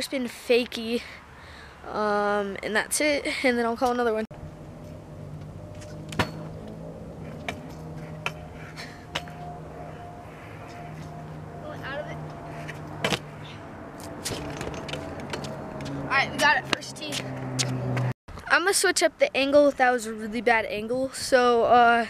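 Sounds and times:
steady low hum: 0:04.3 - 0:17.5
scooter rolling and rattling: 0:14.0 - 0:16.0
scooter clacking on concrete: 0:14.0 - 0:18.1.

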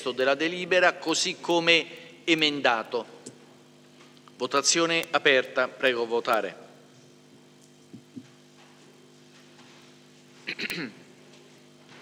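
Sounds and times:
low room hum: 0:00.0 - 0:12.0
person coughing: 0:10.4 - 0:11.1.

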